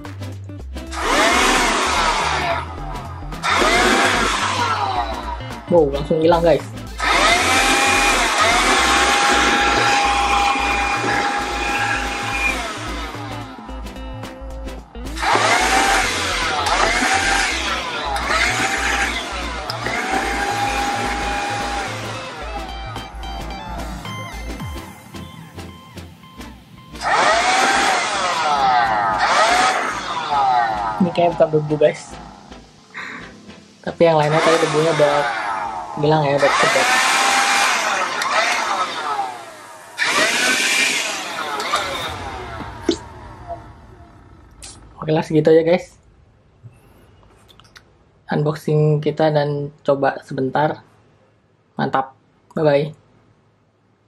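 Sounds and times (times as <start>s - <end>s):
background music with steady beat: 0.0s - 45.2s
hand vacuum motor whirring: 0.9s - 5.7s, 6.9s - 14.0s, 15.1s - 25.3s, 27.0s - 32.4s, 34.2s - 44.8s.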